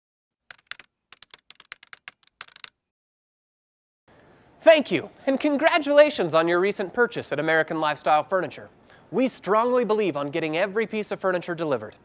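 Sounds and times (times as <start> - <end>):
keyboard typing clicks: 0.5 - 2.7.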